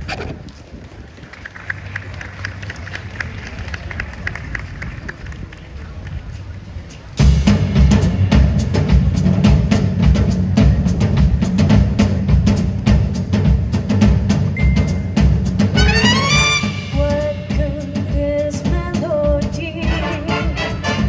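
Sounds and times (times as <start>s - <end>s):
jazz big band swing music: 7.2s - 21.0s.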